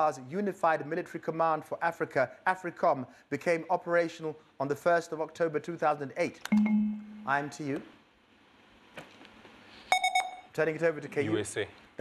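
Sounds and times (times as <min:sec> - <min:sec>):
electronic buzzer beep: 0:06.5 - 0:07.3, 0:09.9 - 0:10.5.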